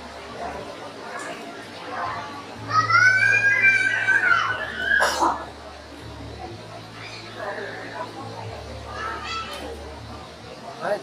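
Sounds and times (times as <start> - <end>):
faint background voices: 0.0 - 11.0
child squealing: 2.7 - 5.1.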